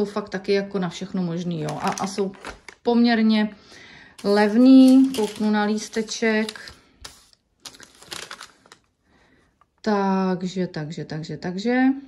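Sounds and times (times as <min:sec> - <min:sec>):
paper receipt rustling: 0:01.5 - 0:03.0, 0:04.2 - 0:08.9.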